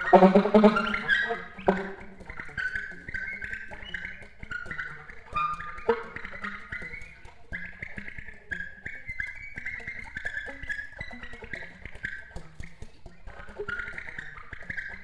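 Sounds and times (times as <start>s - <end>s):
alto saxophone fast runs: 0.0s - 9.0s.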